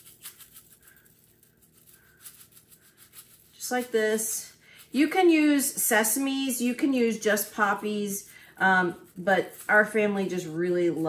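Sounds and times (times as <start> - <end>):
spice shaker rattling: 0.0 - 11.0.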